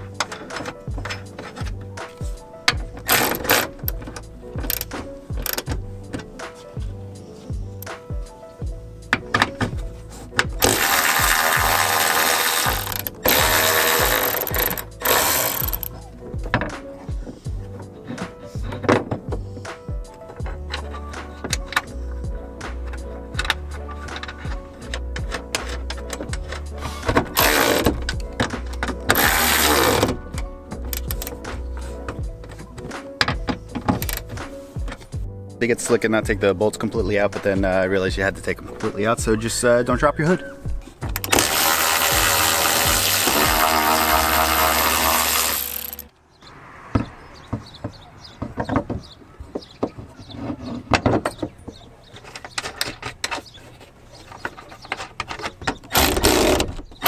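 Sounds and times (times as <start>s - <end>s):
background music with steady beat: 0.0s - 46.1s
hand ratchet clicking: 2.7s - 5.8s, 10.3s - 16.0s, 22.8s - 32.6s, 33.2s - 35.0s, 41.0s - 46.1s, 54.8s - 57.0s.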